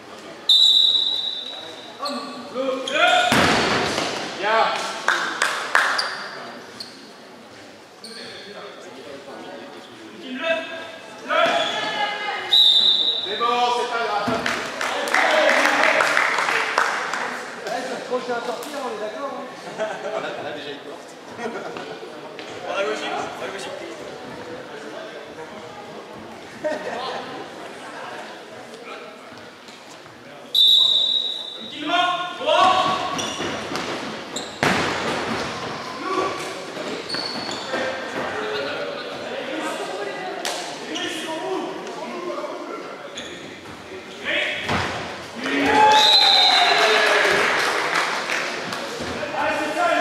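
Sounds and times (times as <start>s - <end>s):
referee's whistle blast: 0.5s - 1.6s, 12.5s - 13.4s, 30.6s - 31.8s, 45.9s - 46.8s.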